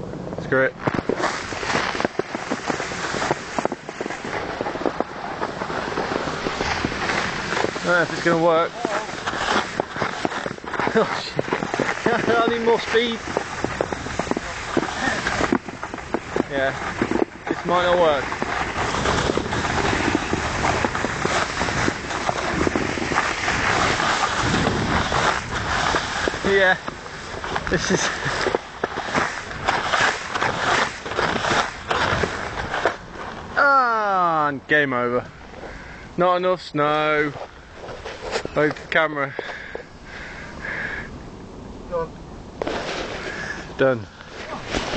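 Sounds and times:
microphone handling noise: 0.0s - 33.6s, 42.5s - 44.9s
snowboard scraping on crusty snow: 0.0s - 33.7s, 34.3s - 40.8s, 42.6s - 44.9s.

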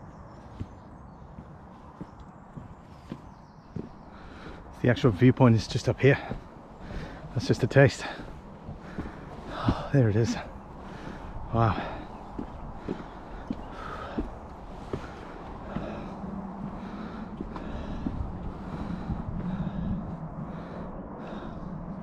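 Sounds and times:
footsteps on timber boardwalk: 0.0s - 21.6s
steady low hum: 0.0s - 22.0s.

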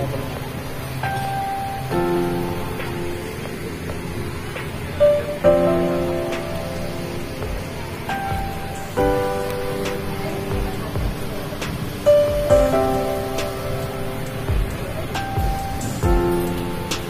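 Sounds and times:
background music of held chords: 0.0s - 17.0s
steady hiss: 0.0s - 17.0s.

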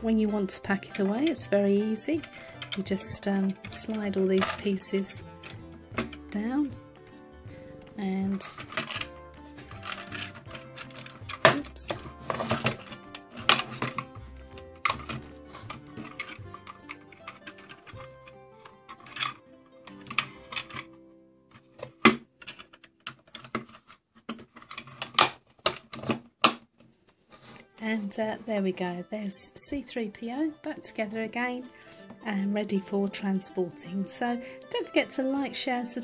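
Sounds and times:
soft background music: 0.0s - 23.7s, 27.0s - 36.0s
plastic toy parts clicking: 2.1s - 2.9s, 8.3s - 20.9s, 21.8s - 26.6s.

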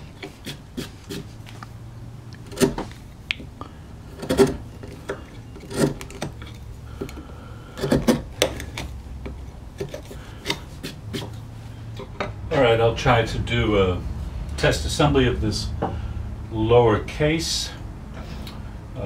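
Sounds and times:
chisel scraping wood: 0.0s - 1.7s, 2.4s - 3.2s, 4.0s - 12.3s.

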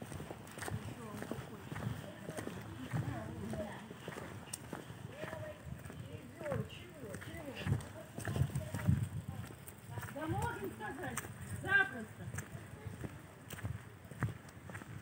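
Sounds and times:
footsteps on asphalt: 0.0s - 15.0s
people talking faintly: 0.1s - 15.0s.

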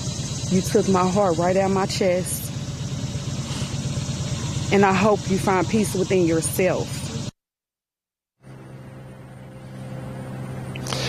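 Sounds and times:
engine running hum: 0.0s - 7.4s, 8.4s - 11.0s.

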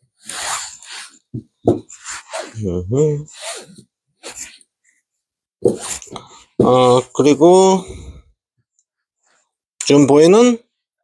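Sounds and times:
breaths: 6.1s - 6.6s, 7.8s - 8.4s.

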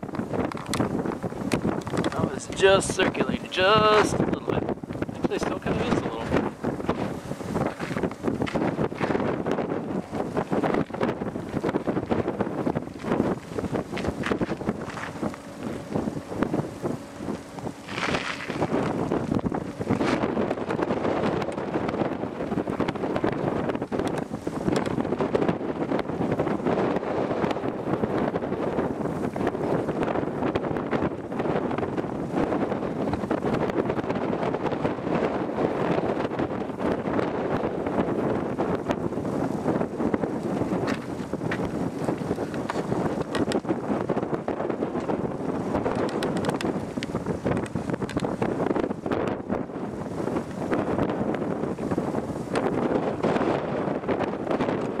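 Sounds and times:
gusty wind buffeting microphone: 0.0s - 55.0s.

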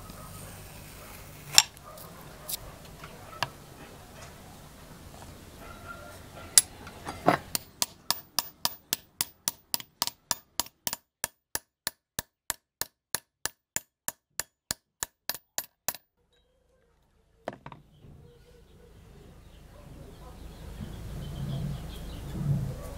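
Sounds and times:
hammer tapping on metal: 6.6s - 16.0s.

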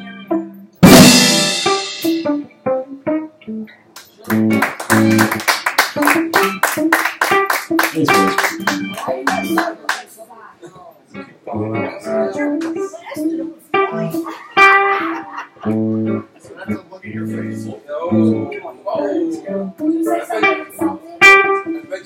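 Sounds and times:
bass guitar phrases: 0.0s - 3.6s, 4.3s - 5.4s, 6.0s - 9.6s, 11.2s - 22.0s
electric guitar phrases: 0.0s - 9.9s, 11.1s - 22.0s.

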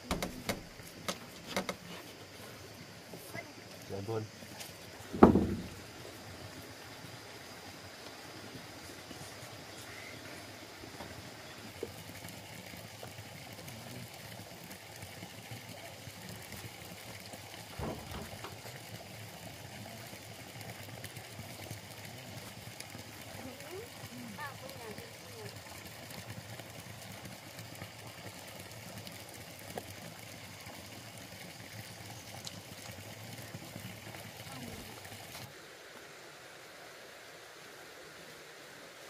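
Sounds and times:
faint outdoor background noise: 0.0s - 39.0s
low thumps: 5.1s - 5.9s.

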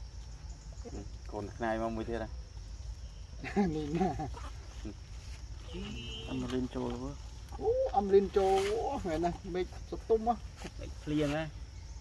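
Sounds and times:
macaque squealing: 3.7s - 4.9s.

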